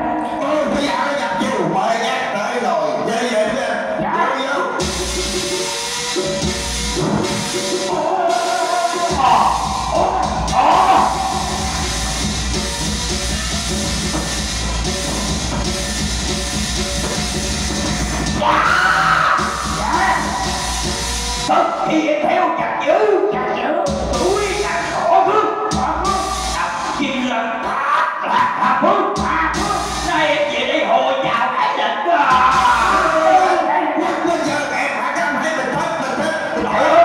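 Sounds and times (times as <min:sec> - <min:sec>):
opera band playing: 0:04.5 - 0:21.6, 0:32.3 - 0:34.4, 0:36.2 - 0:37.0
high gliding melody: 0:04.8 - 0:18.4, 0:19.4 - 0:21.5
low percussion: 0:04.8 - 0:21.5.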